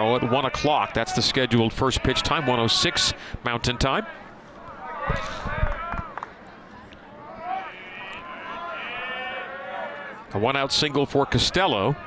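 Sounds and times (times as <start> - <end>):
distant voices shouting: 0.0 - 6.3, 7.0 - 12.0.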